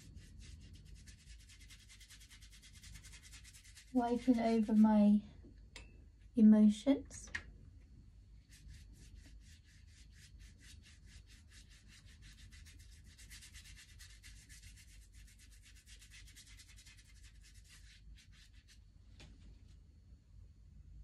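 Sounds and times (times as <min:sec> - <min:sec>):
paintbrush scrubbing paper: 0:00.0 - 0:05.0, 0:08.4 - 0:18.9.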